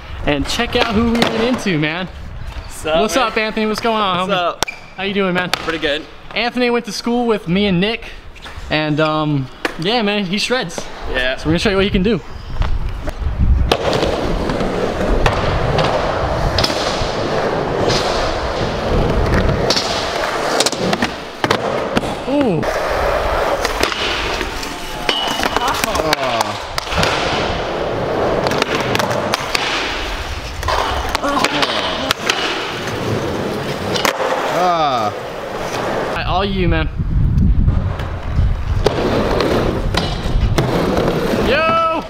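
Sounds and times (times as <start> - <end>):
skateboard wheels rolling on concrete: 0.0 - 42.0
skateboard clacking: 28.1 - 34.6.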